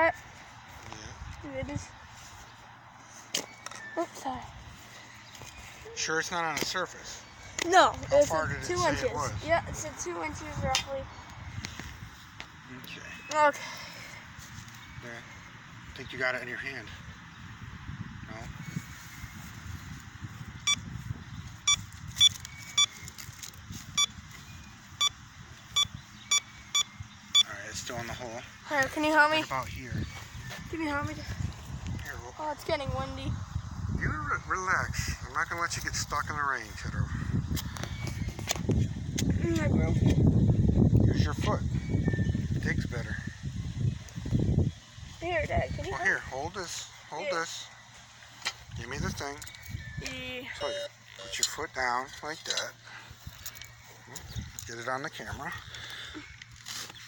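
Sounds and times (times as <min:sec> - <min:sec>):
wind buffeting microphone: 0:07.0 - 0:46.7, 0:48.6 - 0:50.6, 0:52.8 - 0:56.6
metal detector beeping: 0:20.6 - 0:21.0, 0:21.6 - 0:27.5, 0:49.5 - 0:51.6.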